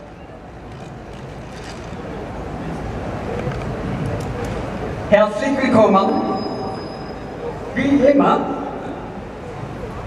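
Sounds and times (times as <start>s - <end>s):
tram wheels squealing on rails: 6.0s - 7.6s.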